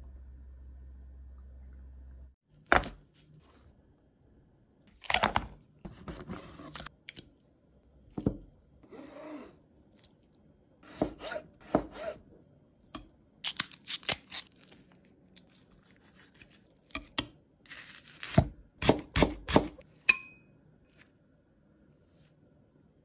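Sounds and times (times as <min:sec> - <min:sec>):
knife cutting on plastic board: 0:10.8 - 0:12.2.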